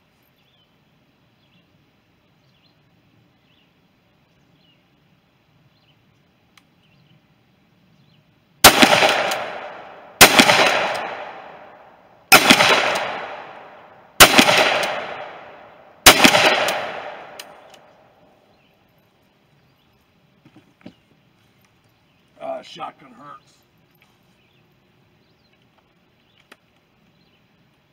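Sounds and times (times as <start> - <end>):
shotgun shots with echo: 8.6 - 17.7.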